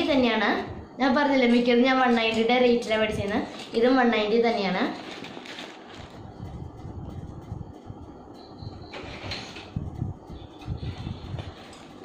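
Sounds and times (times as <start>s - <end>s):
paper bag rustling: 4.8s - 6.4s
plastic packaging crinkling: 4.9s - 6.4s.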